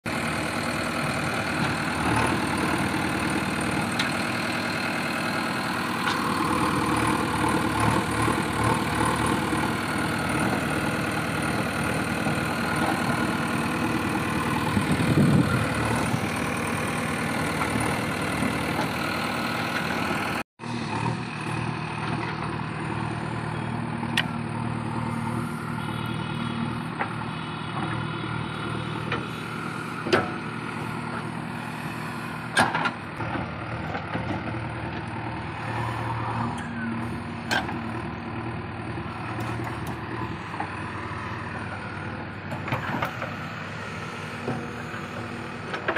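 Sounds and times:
diesel engine running: 0.1 - 45.9.

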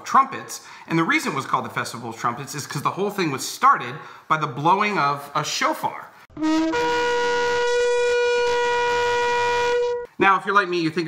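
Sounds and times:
shofar held note: 6.3 - 10.1.

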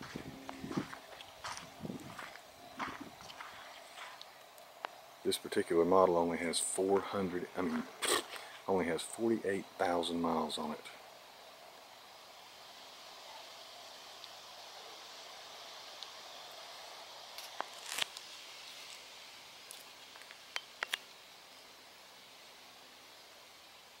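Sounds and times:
soft hiss: 0.0 - 24.0.

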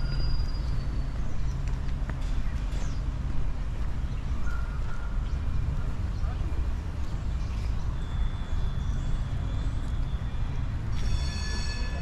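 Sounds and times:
city street rumble: 0.0 - 12.0.

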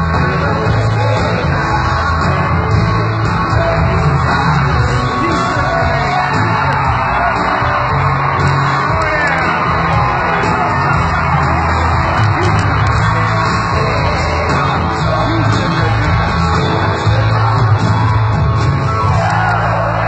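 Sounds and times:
crowd singing along and yelling: 0.0 - 20.0
live band playing loud: 0.0 - 20.0.

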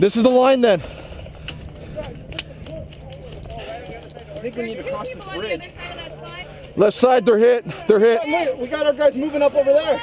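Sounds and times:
distant players shouting: 1.5 - 10.0.

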